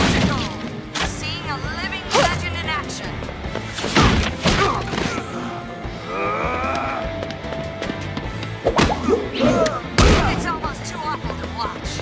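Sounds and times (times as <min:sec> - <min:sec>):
action score music: 0:00.0 - 0:12.0
grunts: 0:04.5 - 0:07.3, 0:09.0 - 0:09.9
man's pained cry: 0:06.0 - 0:07.2.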